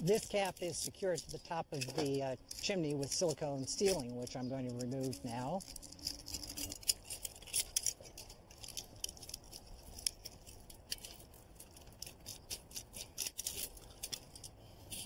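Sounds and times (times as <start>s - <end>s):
blade scraping sealant: 0.1s - 15.0s.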